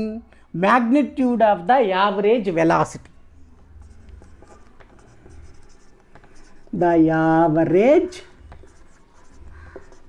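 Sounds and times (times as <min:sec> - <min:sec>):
marker pen on whiteboard: 0:02.1 - 0:10.0.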